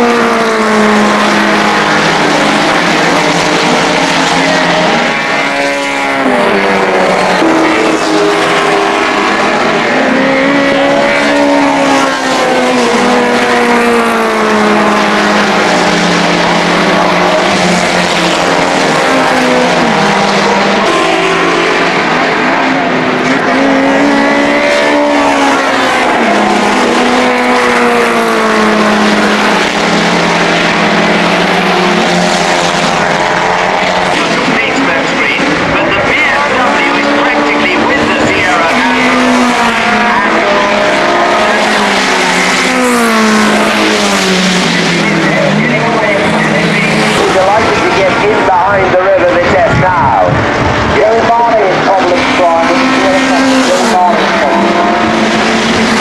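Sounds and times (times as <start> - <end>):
racing car engines passing: 0.0 - 56.0.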